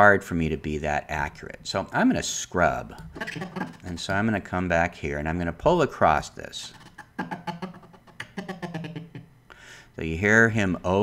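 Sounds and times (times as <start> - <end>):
stuttering fragments of man's voice: 2.6 - 9.2.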